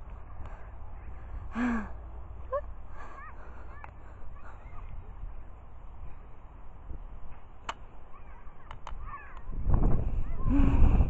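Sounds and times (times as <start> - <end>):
person gasping: 1.4 - 4.7
wind rumble on microphone: 4.1 - 11.0.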